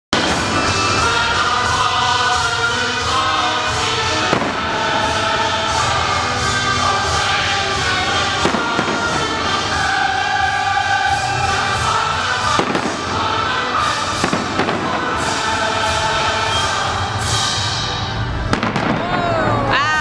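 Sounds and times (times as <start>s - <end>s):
voices: 0.2s - 17.7s, 18.8s - 20.0s
sharp fireworks bangs: 0.2s - 19.4s
fireworks bursting: 0.2s - 19.8s
music: 0.2s - 20.0s.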